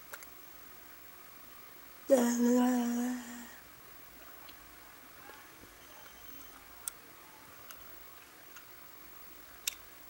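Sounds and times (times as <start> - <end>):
faint sharp clicks: 0.0 - 0.4, 9.6 - 9.8
room hiss: 0.0 - 10.0.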